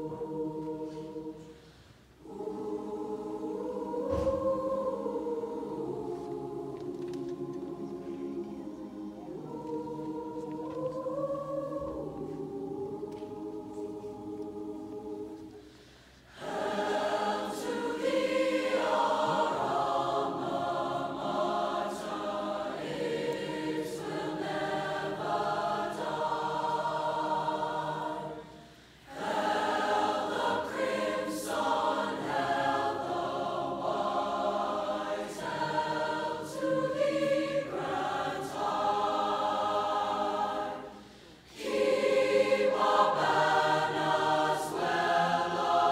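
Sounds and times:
mixed choir singing: 0.0s - 45.9s.

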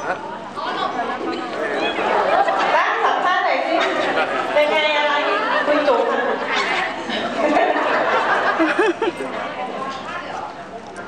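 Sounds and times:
people chattering in hall: 0.0s - 11.0s.

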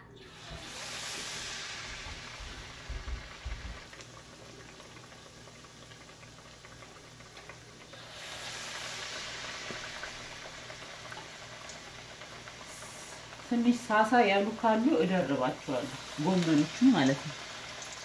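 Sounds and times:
battered cabbage deep-frying in oil: 0.0s - 18.0s.

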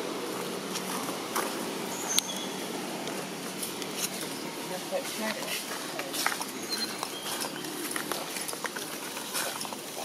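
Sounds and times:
steady woodland hiss: 0.0s - 10.0s.

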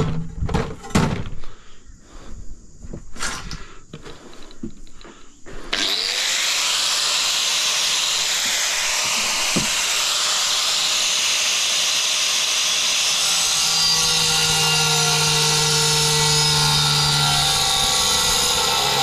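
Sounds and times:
angle grinder cutting tile: 5.7s - 19.0s.

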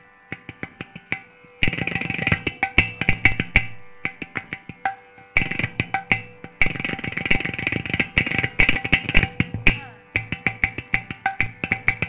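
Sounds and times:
hand drum and clay pot percussion: 0.3s - 12.0s.

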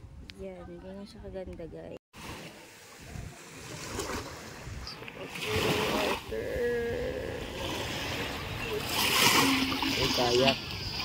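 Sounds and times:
wind noise on microphone: 0.0s - 11.0s
water lapping at shoreline: 2.2s - 11.0s.

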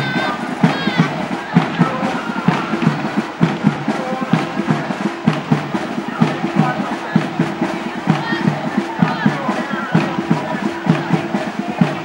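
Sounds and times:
crowd voices: 0.0s - 12.0s
drums beating marching rhythm: 0.0s - 12.0s.

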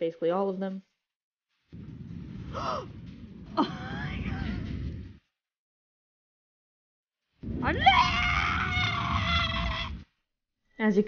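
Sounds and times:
low rumble: 1.7s - 5.4s, 7.4s - 10.1s
high-pitched drawn-out cry: 7.6s - 10.0s.

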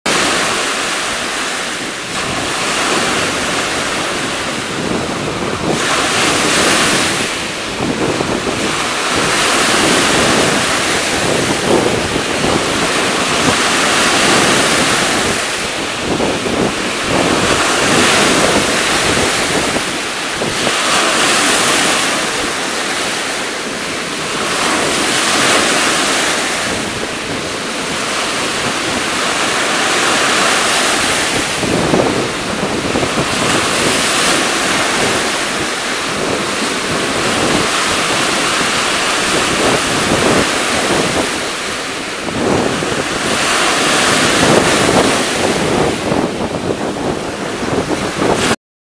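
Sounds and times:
waves washing onto beach: 0.1s - 48.6s.

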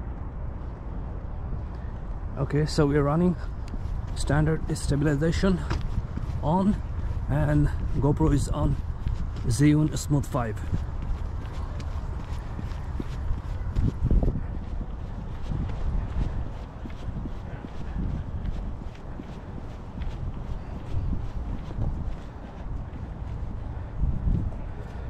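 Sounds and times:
running footsteps on pavement: 0.1s - 25.0s.

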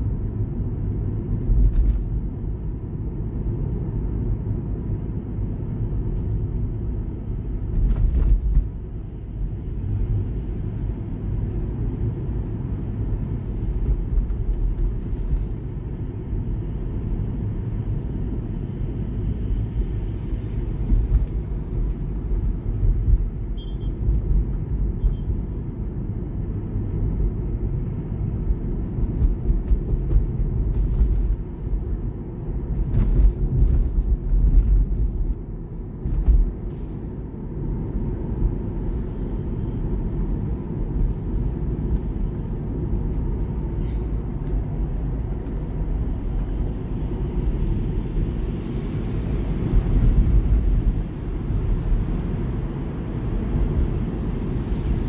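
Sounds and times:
road and tyre rumble: 0.0s - 55.0s.

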